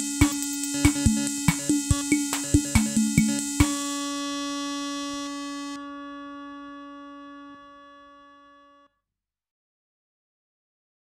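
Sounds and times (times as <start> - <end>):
drum machine pattern: 0.0 - 5.3
sustained electronic note: 0.0 - 8.9.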